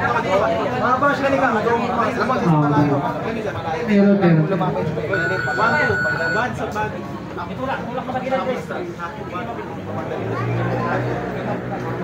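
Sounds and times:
crowd talking: 0.0s - 12.0s
high electronic beep: 5.1s - 6.6s.

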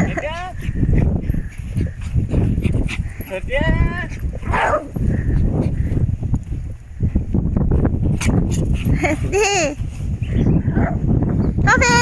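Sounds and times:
small dog barking: 4.5s - 4.9s.

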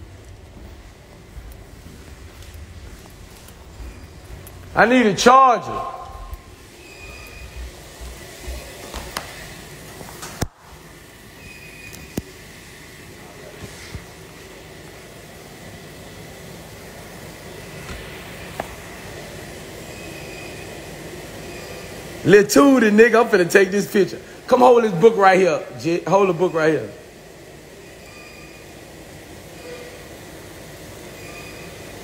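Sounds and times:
room noise: 0.0s - 32.0s.

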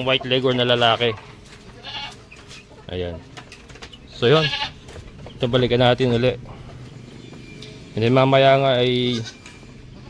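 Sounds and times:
goat bleating: 1.7s - 2.3s, 4.2s - 5.0s, 8.8s - 9.5s.

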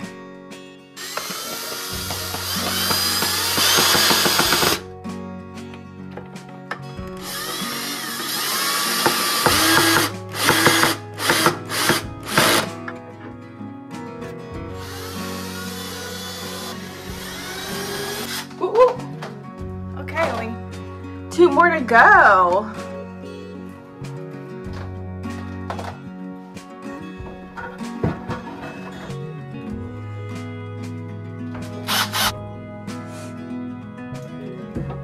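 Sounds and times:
background music: 0.0s - 35.0s
cordless drill driving screws: 1.0s - 4.8s, 7.2s - 12.7s, 14.8s - 18.5s, 31.9s - 32.4s.

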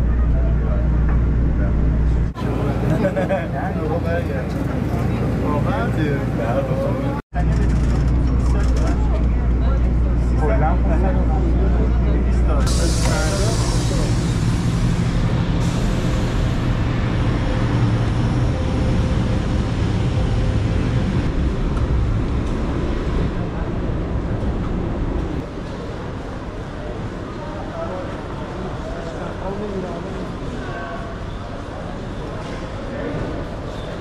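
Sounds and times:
bus engine rumble: 0.0s - 29.2s
passengers chatting: 0.0s - 34.0s.

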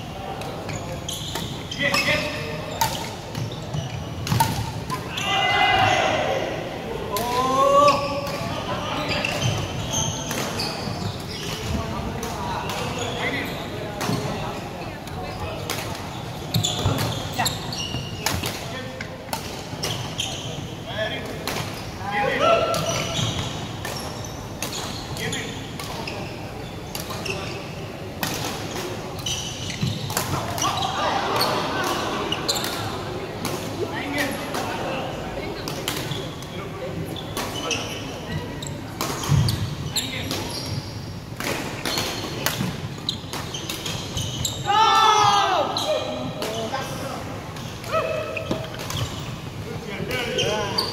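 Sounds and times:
shoes squeaking on wooden floor: 0.6s - 2.4s, 3.1s - 4.3s, 8.9s - 11.8s, 16.1s - 18.2s, 29.2s - 31.6s, 43.0s - 44.8s, 48.4s - 50.9s
racket hitting shuttlecock: 4.2s - 5.1s.

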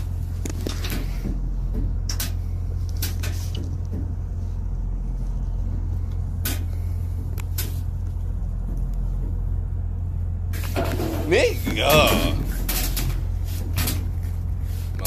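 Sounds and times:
low droning hum: 0.0s - 15.0s.

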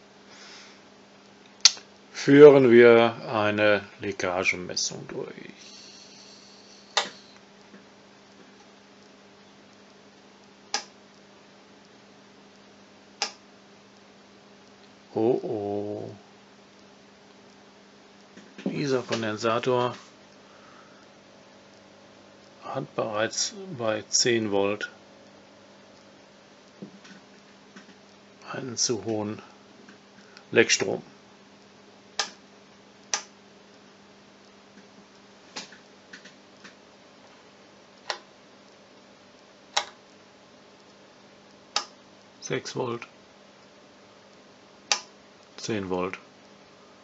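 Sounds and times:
faint low hum: 0.0s - 47.0s
rotary switch clicks: 10.7s - 11.0s, 13.2s - 13.4s, 32.2s - 32.4s, 33.1s - 33.4s, 39.7s - 40.0s, 41.7s - 42.0s, 44.9s - 45.1s.

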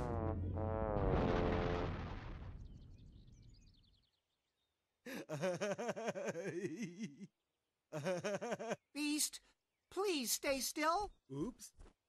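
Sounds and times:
cartoon crash: 0.0s - 3.0s
birds twittering: 2.6s - 5.0s.

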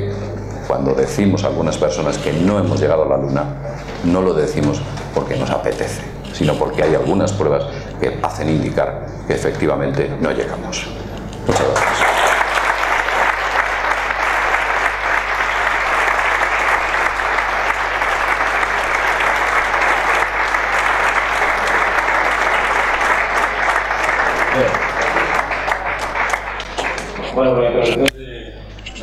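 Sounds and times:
audience applauding: 11.5s - 27.4s.

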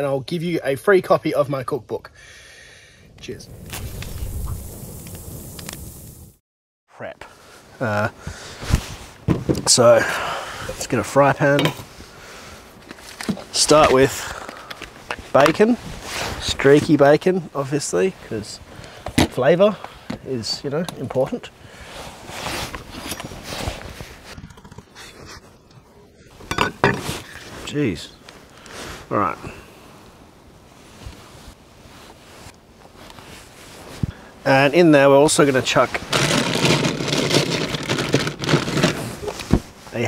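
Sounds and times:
low rumble: 3.2s - 6.3s
rustling: 21.2s - 29.1s, 30.6s - 40.0s
plastic pack cracking open: 36.1s - 39.0s.

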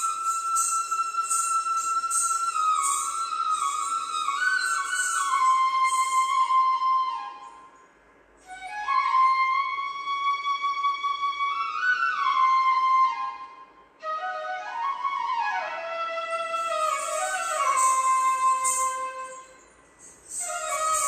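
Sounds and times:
flute playing slow melody: 0.0s - 7.8s, 8.4s - 21.0s.

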